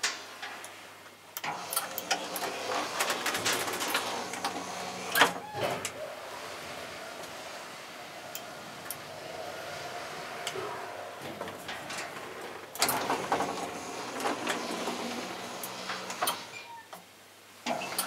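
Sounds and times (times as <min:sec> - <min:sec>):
elevator door clicking rattle: 0:01.4 - 0:16.8
elevator motor hum: 0:01.4 - 0:16.8.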